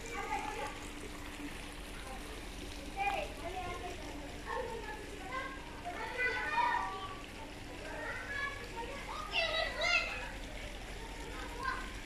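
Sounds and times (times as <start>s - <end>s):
young children playing: 0.0s - 12.0s.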